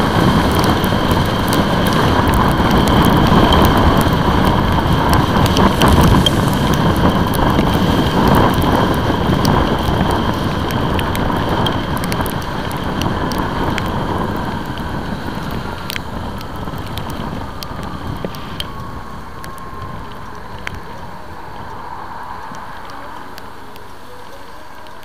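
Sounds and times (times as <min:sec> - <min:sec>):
wind rush: 0:00.0 - 0:24.0
raindrops ticking on camera: 0:00.0 - 0:25.0
tyres on wet road: 0:00.0 - 0:25.0.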